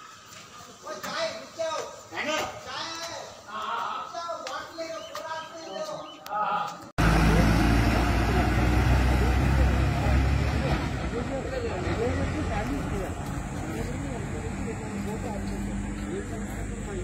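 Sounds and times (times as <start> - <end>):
faint voices: 5.0 - 17.0
bus engine rumble: 7.0 - 17.0.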